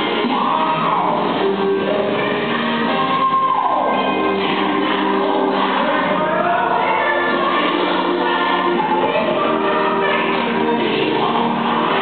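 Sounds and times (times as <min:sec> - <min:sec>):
choir singing over band: 0:00.0 - 0:12.0.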